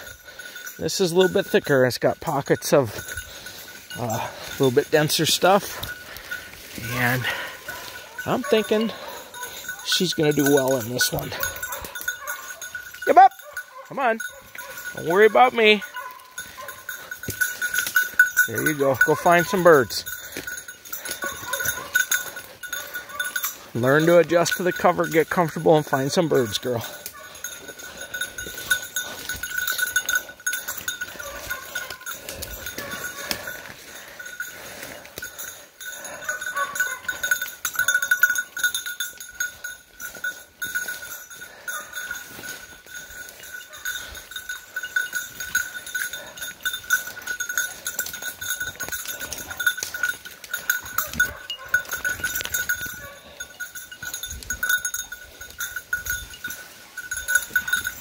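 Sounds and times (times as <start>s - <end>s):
dog collar bell jingling: 0.0s - 58.0s
footsteps through undergrowth: 2.9s - 24.7s, 26.1s - 58.0s
brush crackling: 2.9s - 24.8s, 25.7s - 58.0s.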